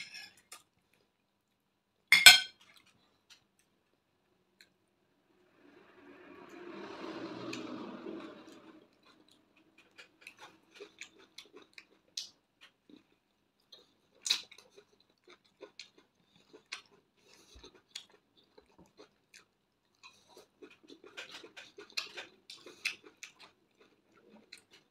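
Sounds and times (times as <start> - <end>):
soft rushing sound: 5.2 - 9.5
wet chewing clicks and smacks: 9.3 - 24.9.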